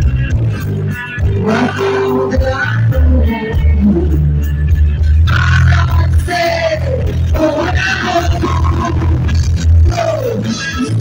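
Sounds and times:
drums: 0:00.0 - 0:11.0
heavy bass line: 0:00.0 - 0:11.0
reggae band playing: 0:00.0 - 0:11.0.

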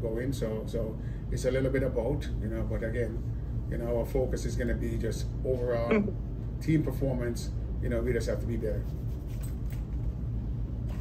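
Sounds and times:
low room rumble: 0:00.0 - 0:11.0.

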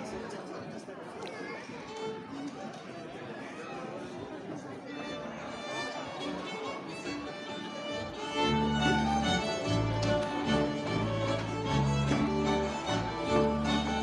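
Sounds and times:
room chatter: 0:00.0 - 0:14.0
fiddles playing folk tune: 0:04.9 - 0:14.0
folk band playing: 0:05.1 - 0:14.0.

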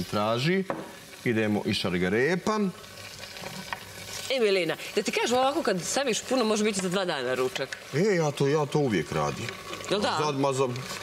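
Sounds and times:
food sizzling in a pot: 0:00.0 - 0:11.0.

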